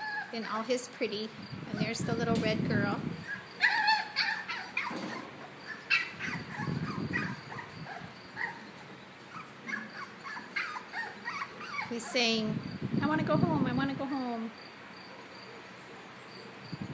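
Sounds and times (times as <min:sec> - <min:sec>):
puppy whining and yipping: 0:00.0 - 0:00.4, 0:03.2 - 0:12.3.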